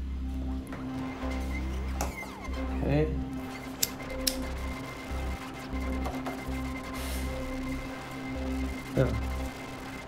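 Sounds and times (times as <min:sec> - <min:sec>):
steady synth drone: 0:00.0 - 0:10.0
rising synth glide: 0:00.8 - 0:10.0.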